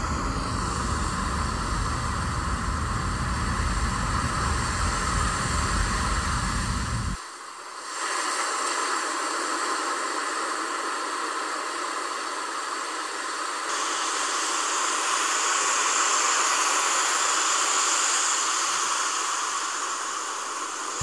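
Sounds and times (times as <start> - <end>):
steady hissing noise: 0.0 - 21.0.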